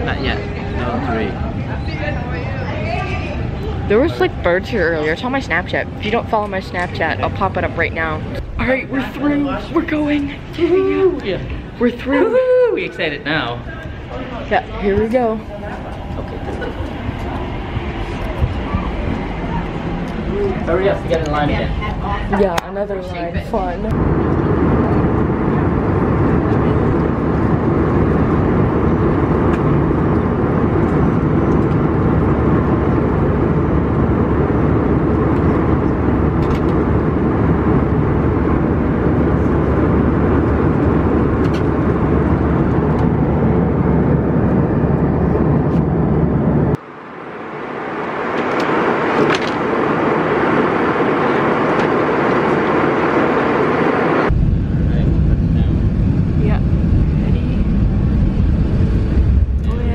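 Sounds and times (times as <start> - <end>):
airliner cabin rumble: 0.0 - 59.9
plane rolling down runway: 0.0 - 59.9.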